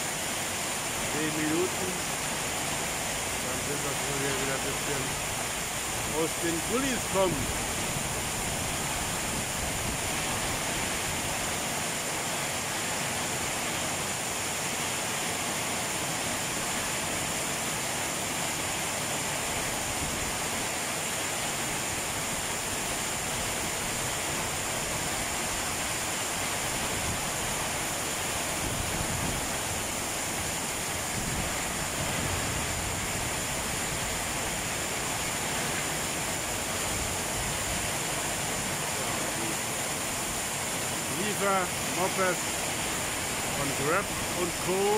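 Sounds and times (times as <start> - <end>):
torrential rain pouring: 0.0 - 44.9.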